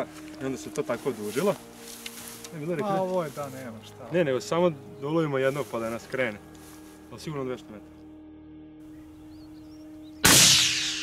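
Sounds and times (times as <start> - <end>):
rifle shot: 10.2 - 11.0.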